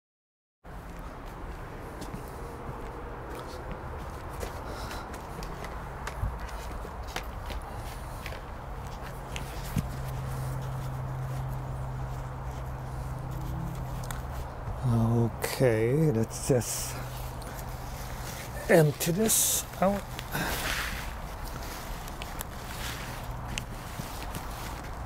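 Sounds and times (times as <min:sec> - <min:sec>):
low hum: 0:09.9 - 0:15.4
rustling on plastic tarp: 0:17.1 - 0:25.0.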